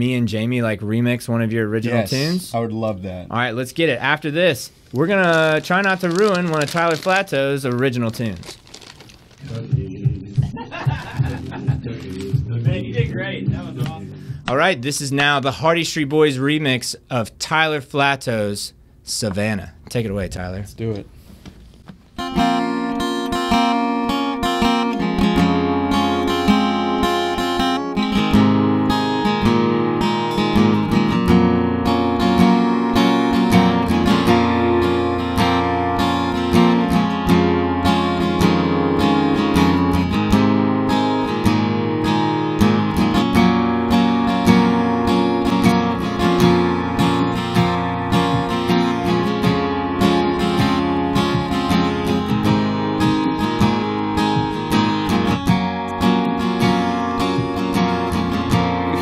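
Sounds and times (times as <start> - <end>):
acoustic guitar strumming: 9.4 - 14.7, 22.2 - 59.0
electronic keyboard holding notes: 22.2 - 59.0.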